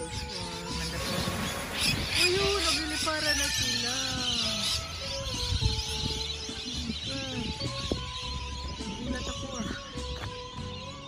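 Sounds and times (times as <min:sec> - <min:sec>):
flock of birds calling: 0:00.0 - 0:11.0.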